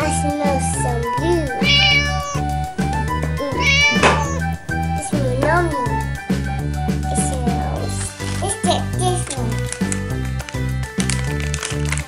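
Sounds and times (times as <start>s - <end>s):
background music: 0.0s - 12.0s
high-pitched cat meows: 1.4s - 6.1s.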